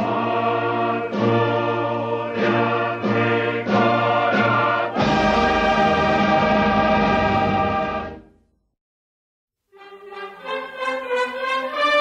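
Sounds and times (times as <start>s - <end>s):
choir singing: 0.0s - 8.3s.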